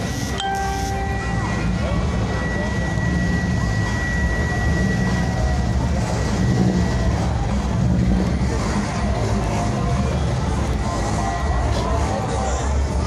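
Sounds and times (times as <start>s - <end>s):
car engines idling: 0.0s - 13.0s
people talking: 0.0s - 13.0s
thin high tone: 0.3s - 5.3s.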